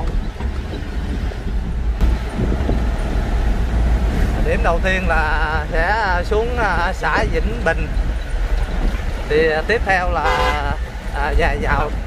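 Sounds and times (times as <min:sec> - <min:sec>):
engine and road rumble: 0:00.0 - 0:12.0.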